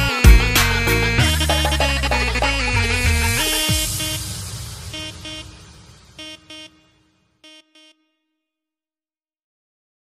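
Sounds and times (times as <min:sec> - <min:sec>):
electronic dance music: 0:00.0 - 0:08.0
short horn-like synth notes: 0:00.0 - 0:08.5.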